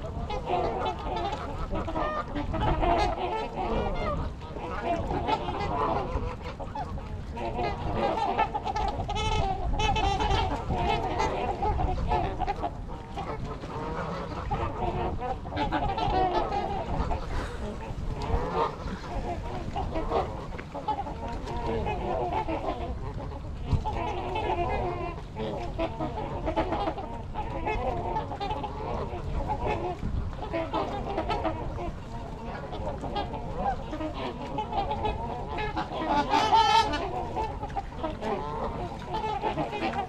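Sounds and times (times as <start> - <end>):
geese and swans honking: 0.0 - 40.0.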